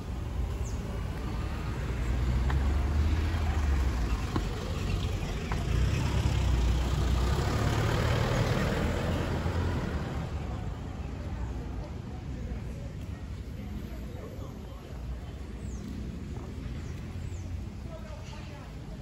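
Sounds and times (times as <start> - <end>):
cars passing: 0.0 - 19.0.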